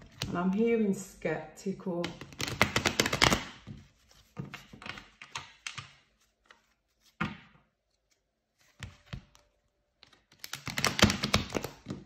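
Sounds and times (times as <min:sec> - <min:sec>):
cards clicking and snapping: 0:02.1 - 0:03.6, 0:10.0 - 0:12.0.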